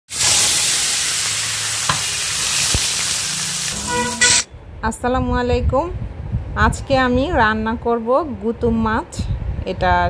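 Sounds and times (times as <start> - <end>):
fish sizzling in hot oil: 0.1 - 4.4.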